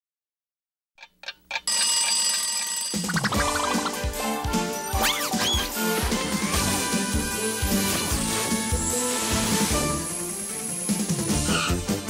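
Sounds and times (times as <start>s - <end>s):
alarm clock ticks: 1.0s - 5.2s
alarm clock bell ringing: 1.5s - 4.0s.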